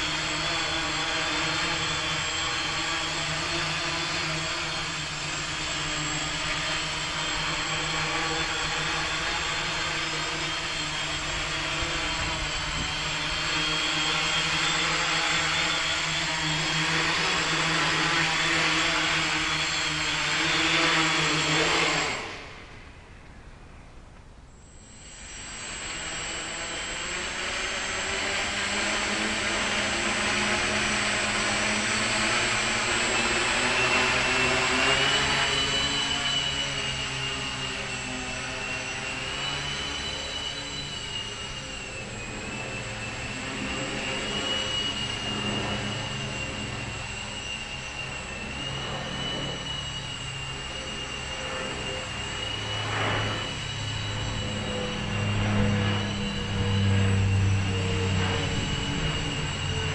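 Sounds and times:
multirotor copter whirring buzz: 0.0 - 59.9.

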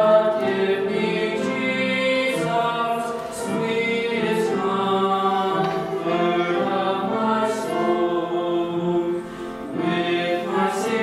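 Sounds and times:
girl and boy singing a hymn: 0.0 - 11.0.

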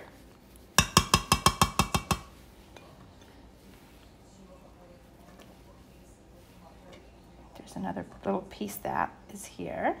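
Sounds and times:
metal spoon clinking on pot: 0.8 - 3.4.

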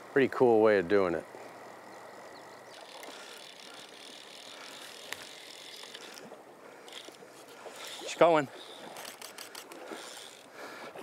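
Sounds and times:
river water flowing: 0.0 - 11.0
faint clicks: 2.7 - 8.0, 8.6 - 10.5.

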